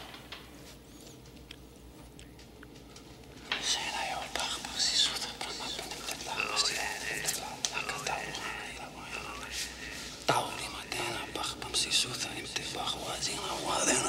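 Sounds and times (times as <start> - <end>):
person whispering: 3.6 - 14.0.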